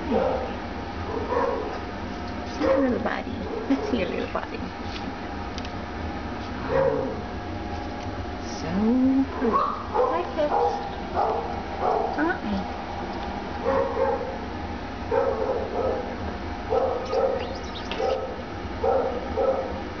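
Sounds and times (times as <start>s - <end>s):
gliding animal calls: 16.9s - 18.3s.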